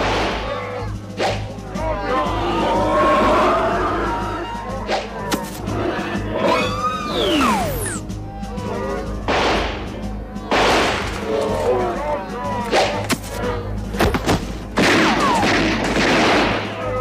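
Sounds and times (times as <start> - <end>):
voices shouting: 0.0 - 14.0, 16.5 - 17.0
action soundtrack music: 0.0 - 17.0.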